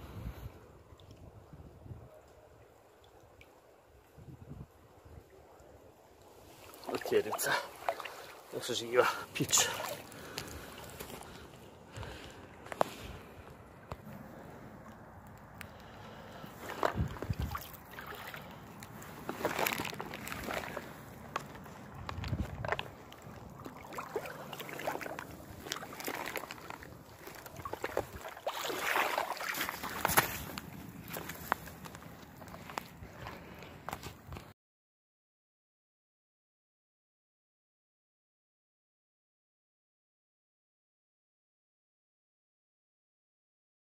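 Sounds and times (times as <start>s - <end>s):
river water sloshing: 2.8s - 34.4s.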